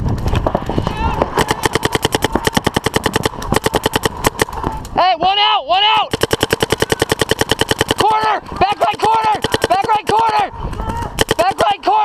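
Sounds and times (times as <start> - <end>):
paintball marker rapid firing: 0.2 - 4.8, 6.0 - 10.4, 11.0 - 11.8.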